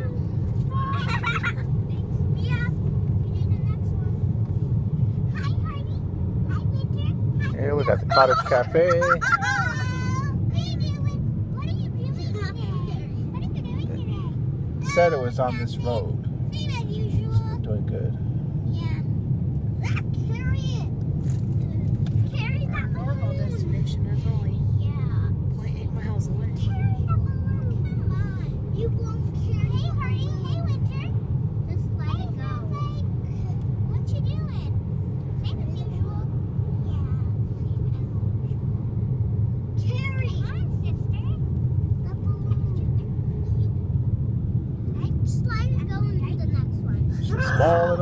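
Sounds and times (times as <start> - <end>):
car cabin road rumble: 0.0 - 48.0
voices talking: 5.4 - 17.9, 44.9 - 48.0.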